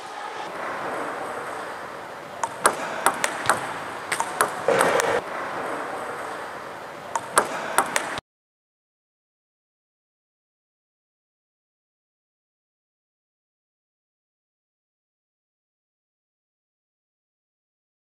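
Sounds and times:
table tennis ball ticking: 2.4s - 5.2s, 7.1s - 8.2s.

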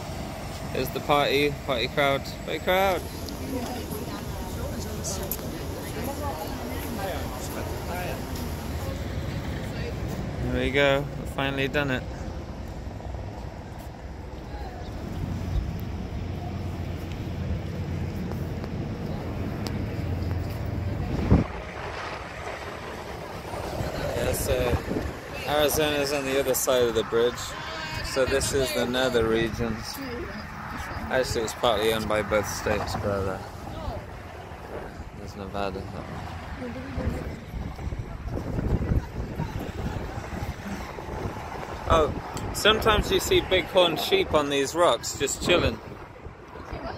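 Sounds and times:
highway traffic rumble: 0.0s - 46.9s
wind buffeting microphone: 12.1s - 46.9s
man speaking: 31.1s - 33.5s.

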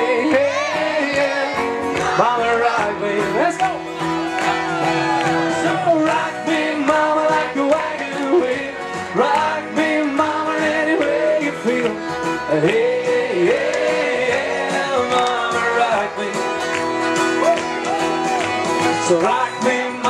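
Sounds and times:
bluegrass band with singing: 0.0s - 20.0s
crowd clapping along: 0.0s - 20.0s.

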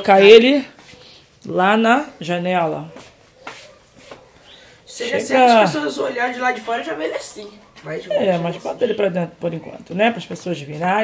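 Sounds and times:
soft rustles of handling: 2.9s - 4.4s.

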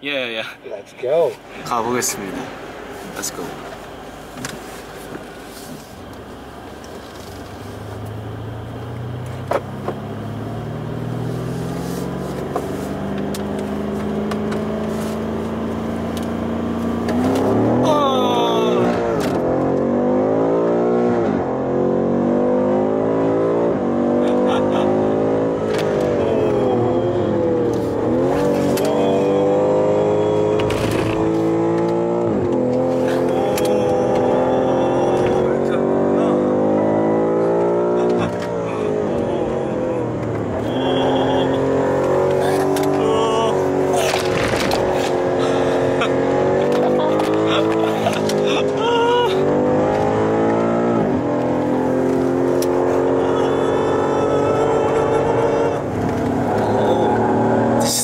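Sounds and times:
car engine revving: 1.3s - 58.0s
passenger crying out: 17.7s - 19.2s, 24.2s - 31.3s, 32.8s - 37.0s, 37.8s - 49.9s, 52.0s - 58.0s.

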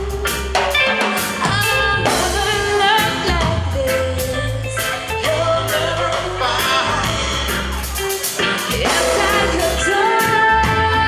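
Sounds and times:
bass guitar: 0.0s - 11.0s
drum kit: 0.0s - 11.0s
electric guitar: 0.0s - 11.0s
woman singing: 1.2s - 7.2s, 8.6s - 11.0s.

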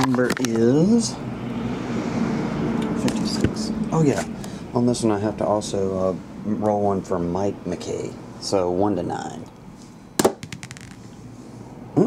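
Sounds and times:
die bouncing clicks: 10.2s - 11.0s
die clacking on tabletop: 10.2s - 11.0s.

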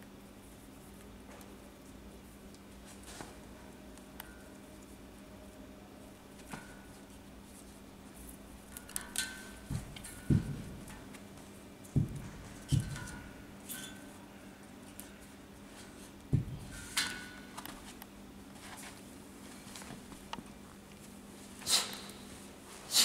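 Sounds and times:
scuffing and rustling: 9.5s - 13.4s, 17.6s - 20.3s
kettlebell thumps on turf: 9.7s - 10.9s, 11.9s - 13.3s, 16.3s - 16.7s.

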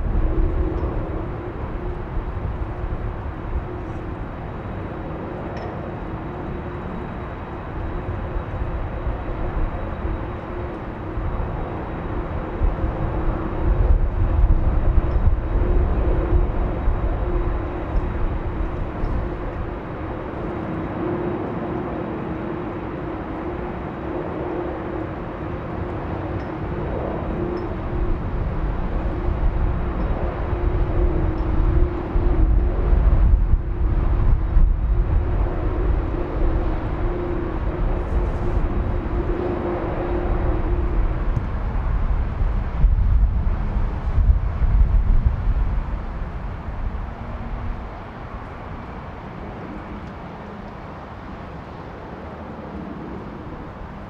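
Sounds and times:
aircraft noise hum: 0.0s - 54.0s
wind rumbling on microphone: 0.0s - 54.0s.

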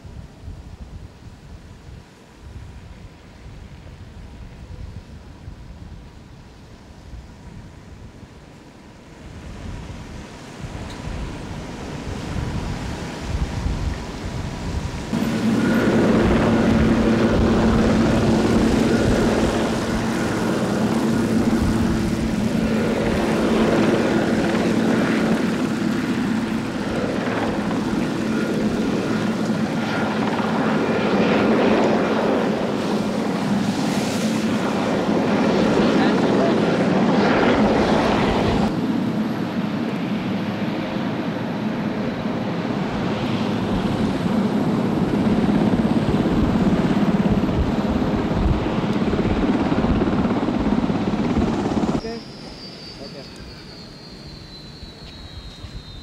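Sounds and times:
helicopter rotor and turbine: 0.0s - 56.0s
steady low hum: 15.1s - 32.4s.

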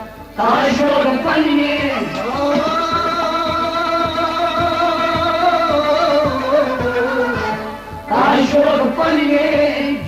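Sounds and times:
low drum beats: 0.2s - 10.0s.

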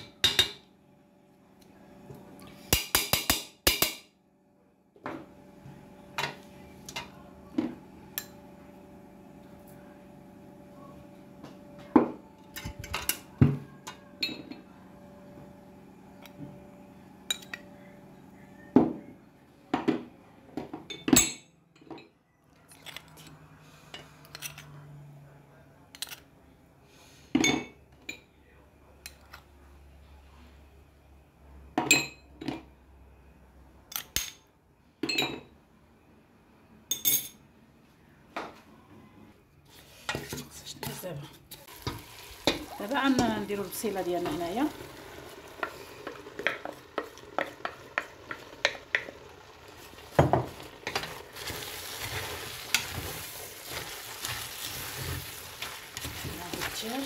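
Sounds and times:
food sizzling in pot: 41.5s - 57.0s.

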